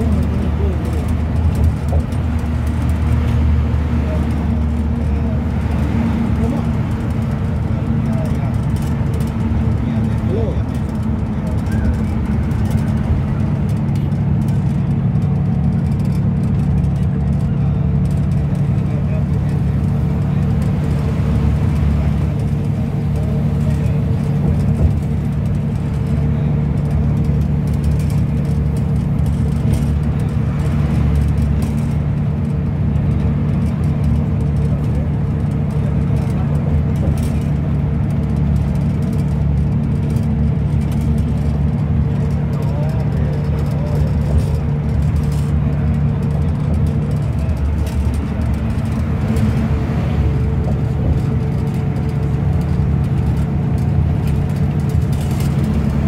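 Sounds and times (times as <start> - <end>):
bus engine and road drone: 0.0 - 56.0.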